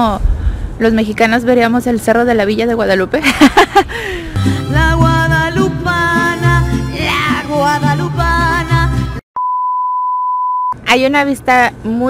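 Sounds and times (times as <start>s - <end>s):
woman speaking: 0.8s - 3.3s, 10.8s - 12.0s
background music: 4.3s - 9.2s
steady electronic beep: 9.4s - 10.8s.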